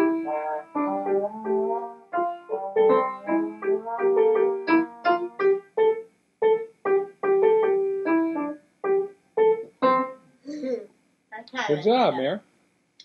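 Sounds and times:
piano melody: 0.0 - 10.4, 11.6 - 12.4.

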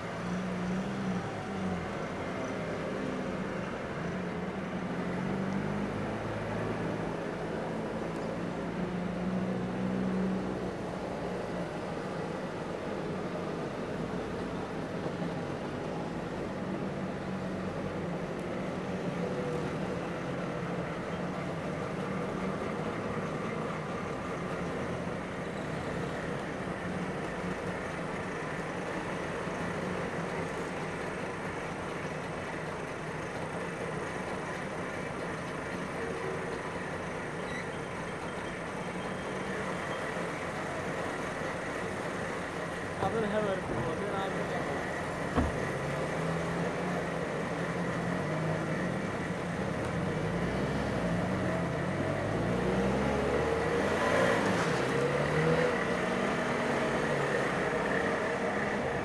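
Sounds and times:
two-stroke car engines passing: 38.1 - 59.0.

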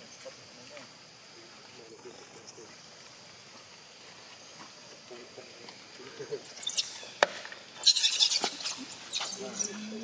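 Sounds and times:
young monkeys squealing: 6.4 - 7.2, 7.8 - 10.0.

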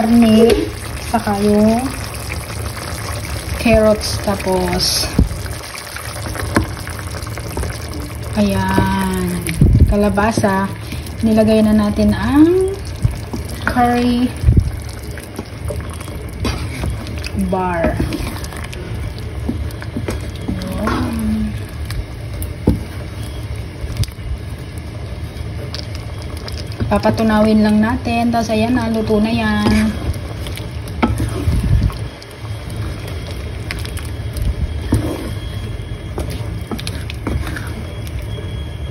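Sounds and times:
low rumble: 0.0 - 38.9
sauce bubbling in a pan: 0.0 - 38.9.

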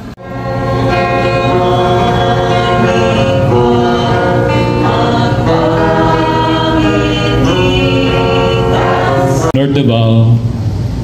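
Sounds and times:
low accompaniment: 0.0 - 11.0
group singing a slow hymn: 0.3 - 9.5.

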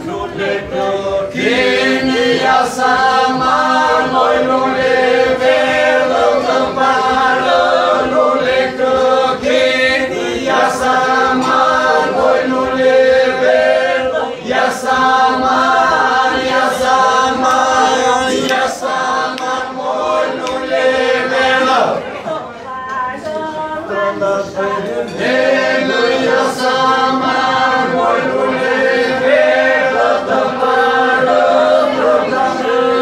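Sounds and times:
group singing polyphony: 0.0 - 33.0
held vocal drone: 0.0 - 33.0.

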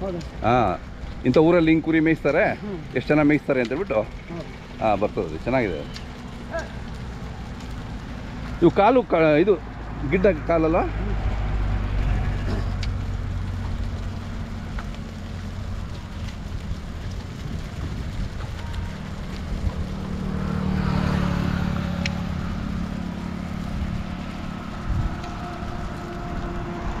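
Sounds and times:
highway traffic rumble: 0.0 - 27.0
vehicle passing: 0.0 - 27.0.

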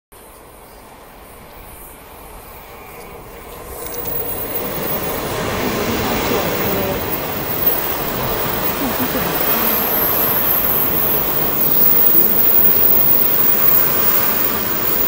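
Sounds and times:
train rumbling past: 0.5 - 15.0.

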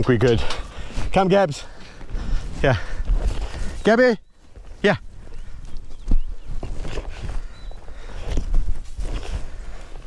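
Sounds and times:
footsteps on dirt track: 0.7 - 10.0.

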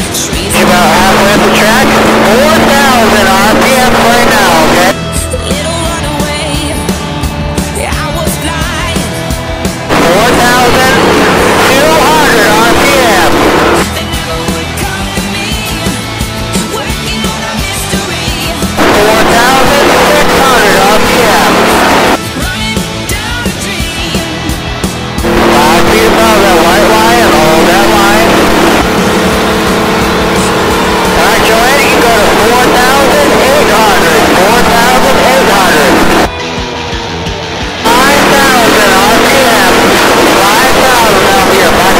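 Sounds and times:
person talking: 0.0 - 5.0, 9.9 - 13.8, 18.8 - 22.2, 25.2 - 36.3, 37.9 - 41.9
road and wind noise: 0.0 - 5.0, 8.8 - 13.9, 24.4 - 41.9
race car engine at speed: 0.0 - 41.9.

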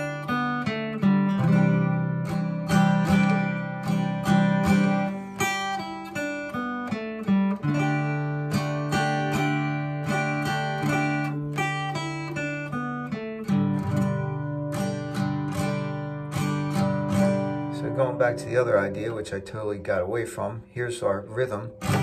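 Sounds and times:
acoustic guitar strumming chords: 0.0 - 22.0
picked guitar note fills: 0.0 - 22.0.

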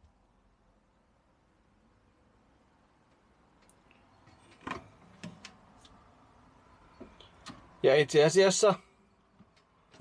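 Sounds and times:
faint small clicks: 3.1 - 4.0.

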